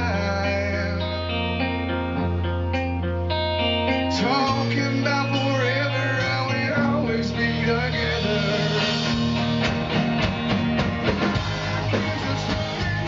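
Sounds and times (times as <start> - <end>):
live rock band playing: 0.0 - 13.0
wavering melody line: 1.4 - 9.7.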